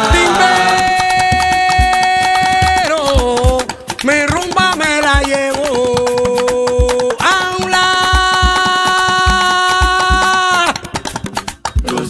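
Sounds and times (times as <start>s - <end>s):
person singing: 0.0s - 11.1s, 11.8s - 12.0s
hand drums: 0.0s - 12.0s.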